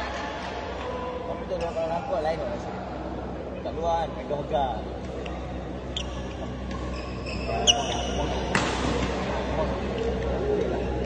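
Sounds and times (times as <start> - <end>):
shoes squeaking on floor: 5.2 - 8.5
racket hitting shuttlecock: 8.4 - 9.3.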